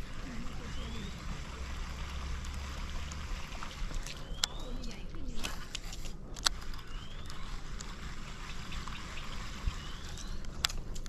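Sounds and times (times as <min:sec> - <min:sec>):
water trickling: 0:00.0 - 0:05.0
faint rising whistle: 0:06.9 - 0:07.5.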